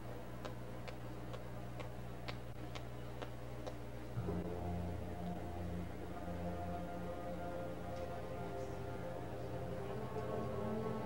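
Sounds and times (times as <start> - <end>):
low recording hum: 0.0 - 11.0.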